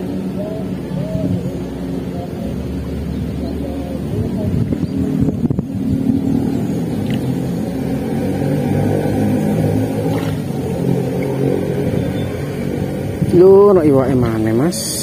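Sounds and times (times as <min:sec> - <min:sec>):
engine humming: 0:00.0 - 0:15.0.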